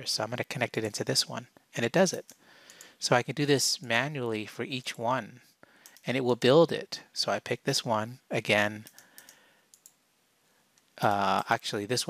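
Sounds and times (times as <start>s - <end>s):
faint computer mouse clicks: 2.2s - 2.9s, 5.8s - 6.1s, 8.8s - 10.0s.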